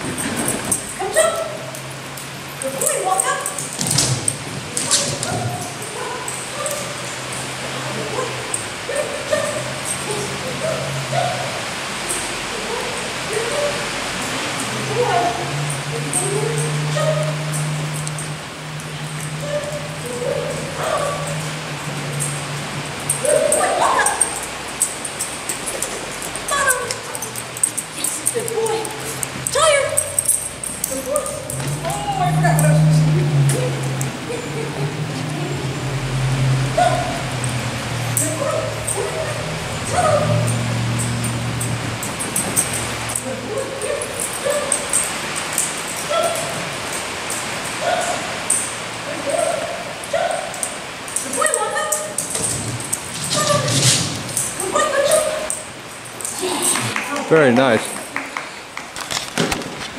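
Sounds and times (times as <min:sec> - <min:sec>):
dog barking and yipping: 0:04.7 - 0:18.4, 0:19.0 - 0:32.8, 0:36.2 - 0:56.3.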